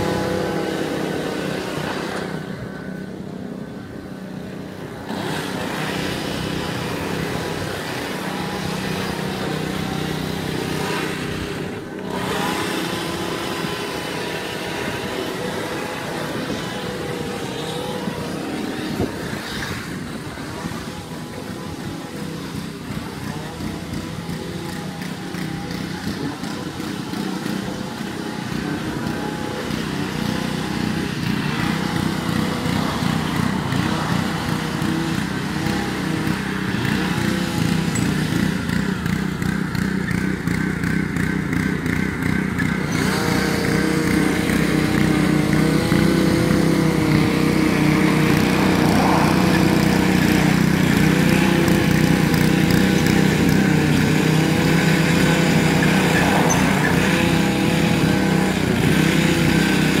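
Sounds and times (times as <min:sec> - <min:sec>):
small petrol engine running: 0:00.0 - 1:00.0.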